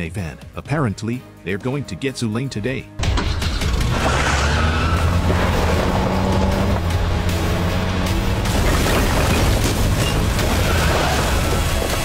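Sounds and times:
vehicle engine droning: 3.0 - 9.2.

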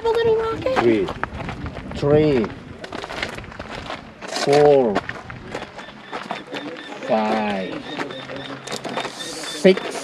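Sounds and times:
faint distant voices: 5.8 - 10.0.

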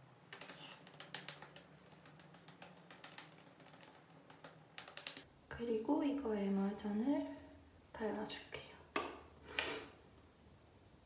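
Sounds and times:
fingertips tapping on skin: 0.3 - 5.3.

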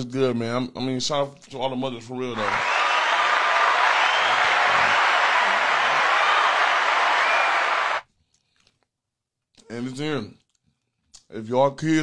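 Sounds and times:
crowd cheering and applause: 2.4 - 8.0.

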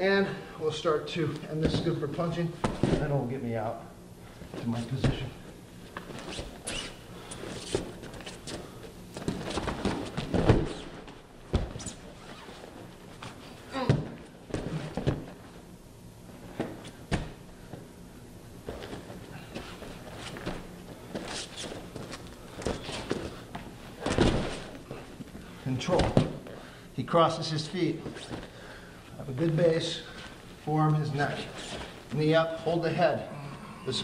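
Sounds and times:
bodies thudding on a mat: 2.6 - 3.3, 4.6 - 5.3, 7.3 - 15.5, 16.5 - 17.8, 18.6 - 25.3, 25.9 - 26.6.

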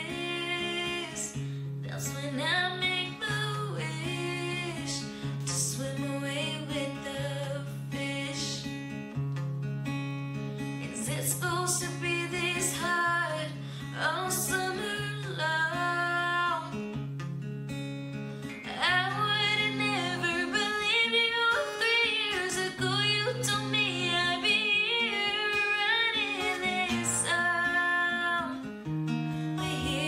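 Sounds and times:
woman singing: 0.0 - 8.9, 10.8 - 16.9, 18.6 - 28.7, 29.5 - 30.0
strummed acoustic guitar: 0.0 - 30.0.

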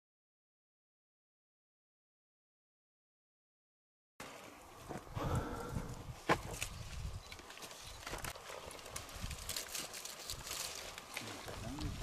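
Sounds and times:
grapevine leaves rustling: 6.0 - 12.0.

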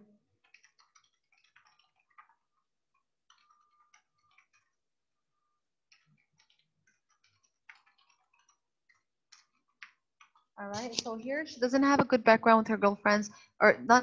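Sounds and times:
typing on keyboard: 0.4 - 4.8, 5.9 - 11.2.

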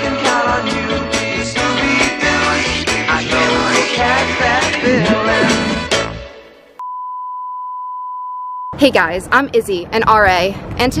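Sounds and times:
high-pitched test tone beep: 6.8 - 8.8
woman speaking: 8.8 - 11.0.

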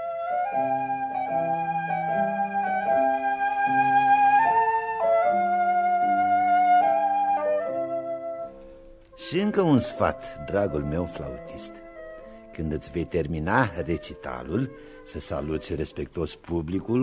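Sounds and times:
flute playing slow melody: 0.0 - 8.8, 9.6 - 15.8.

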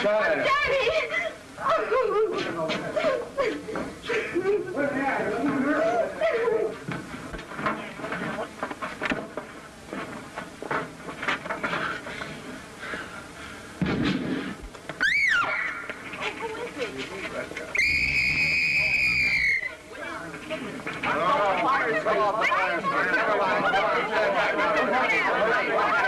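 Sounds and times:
thump: 13.8 - 14.5
raised voices: 17.7 - 26.0
high sliding cry: 17.8 - 19.8
whistle blast: 17.8 - 19.8.

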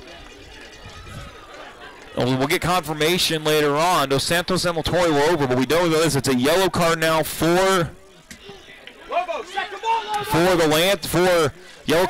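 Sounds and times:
faint crowd voices: 0.0 - 12.0.

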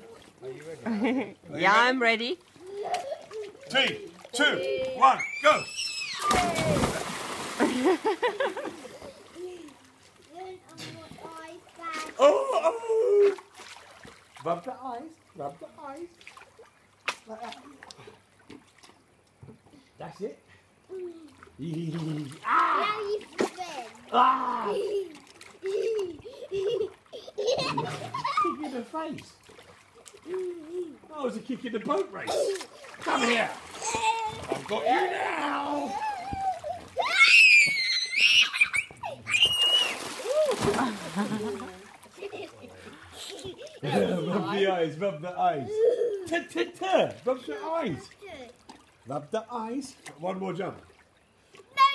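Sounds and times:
water lapping in a pool: 0.0 - 51.9
soft splashes: 2.3 - 19.8, 20.5 - 51.8
child squealing: 5.1 - 6.9, 35.4 - 40.6.

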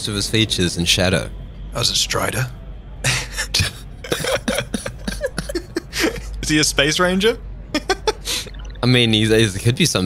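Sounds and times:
person laughing: 3.1 - 6.4, 7.8 - 8.6.

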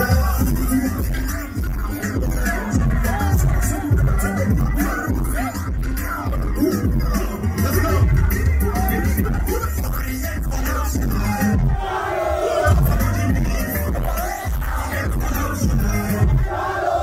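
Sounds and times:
crowd shouting along: 0.0 - 5.6, 10.8 - 17.0
live concert music through pa: 0.0 - 17.0.

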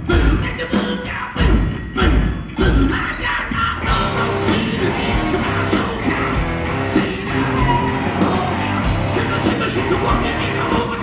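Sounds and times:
hard rock band playing live: 0.0 - 11.0.

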